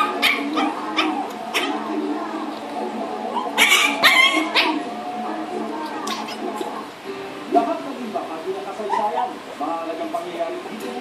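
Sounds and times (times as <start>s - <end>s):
puppy barking: 0.0s - 1.9s, 3.3s - 4.9s, 6.0s - 6.9s, 8.8s - 9.4s.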